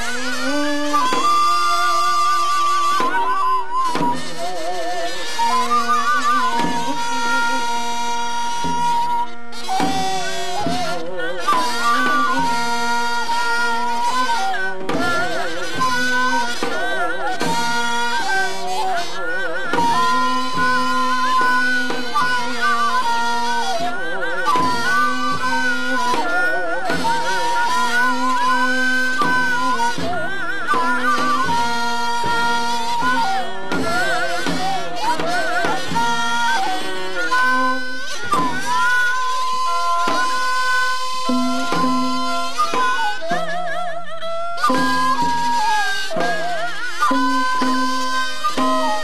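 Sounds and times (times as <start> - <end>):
drum strokes: 0.0 - 43.4, 44.7 - 49.0
wind and string melody: 0.0 - 49.0.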